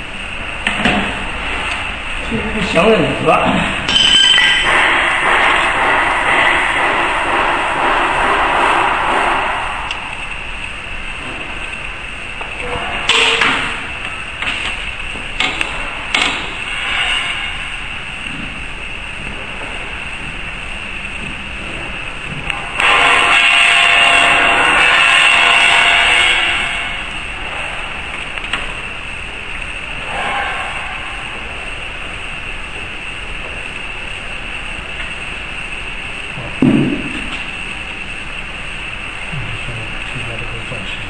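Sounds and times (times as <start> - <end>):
louder machine noise: 0.0 - 41.0
steady workshop machine noise: 0.0 - 41.0.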